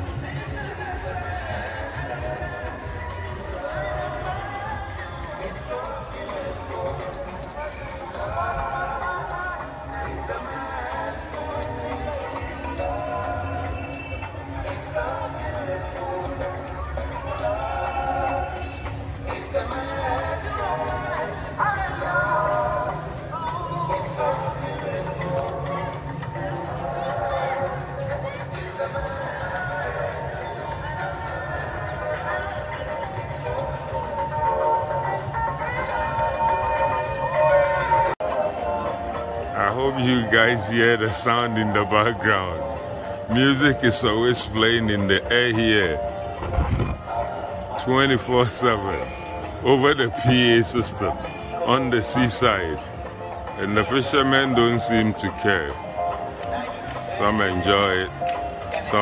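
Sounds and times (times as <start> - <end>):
vocal music over loudspeakers: 0.0 - 59.0.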